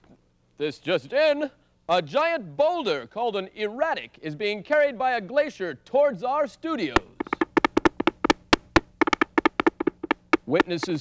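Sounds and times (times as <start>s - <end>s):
sharp percussive taps and knocks: 7.0s - 11.0s.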